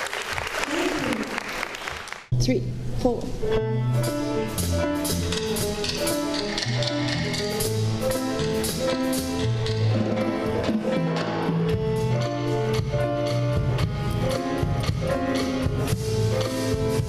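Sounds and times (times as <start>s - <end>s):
low bass notes: 2.3s - 17.0s
piano chords: 2.6s - 17.0s
drum kit: 4.0s - 17.0s
hand percussion: 4.6s - 13.5s.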